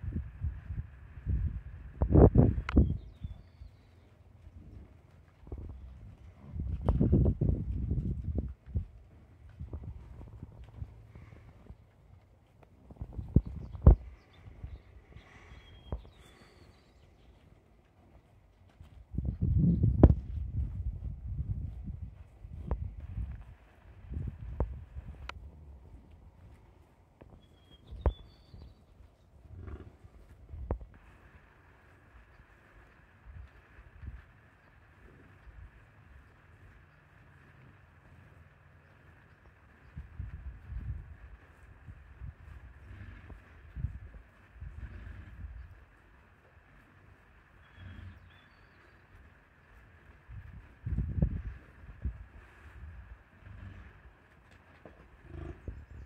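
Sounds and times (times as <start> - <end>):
bison grunting: 55.2 - 56.0.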